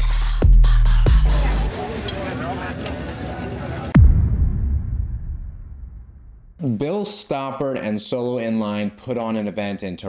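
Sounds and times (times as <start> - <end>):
street noise: 0.0 - 4.6
indistinct group chatter: 0.7 - 4.0
sudden deep hit: 4.0 - 6.6.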